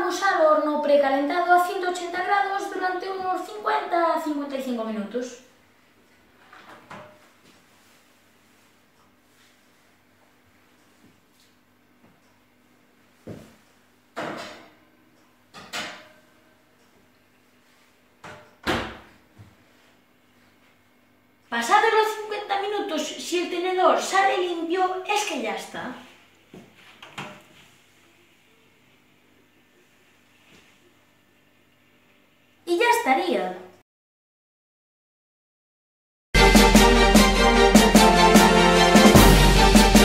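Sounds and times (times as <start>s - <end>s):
oven door knocks and clunks: 18.2s - 19.2s.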